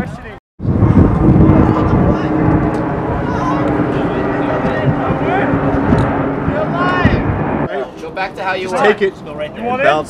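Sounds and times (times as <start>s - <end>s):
people talking: 0.0s - 0.4s, 1.5s - 2.4s, 3.1s - 10.0s
loud steady rush: 0.6s - 10.0s.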